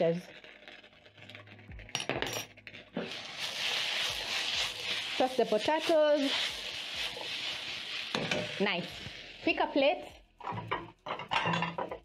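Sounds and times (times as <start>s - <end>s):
food sizzling in hot pan: 0.0s - 10.3s.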